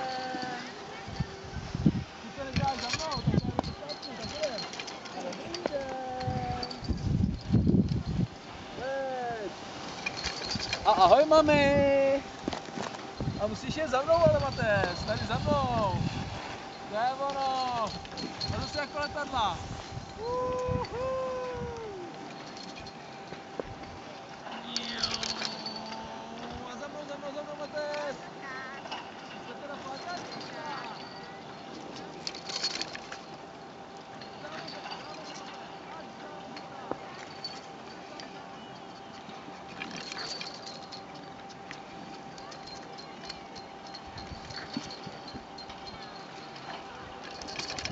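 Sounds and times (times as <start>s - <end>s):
faint hum: 0.0s - 47.9s.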